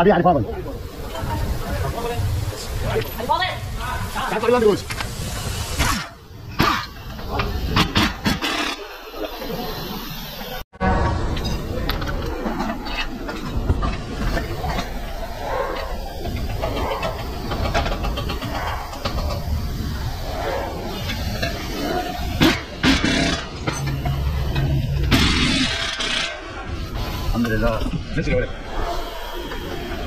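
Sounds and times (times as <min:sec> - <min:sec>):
air impact wrench: 0:21.0 - 0:27.4.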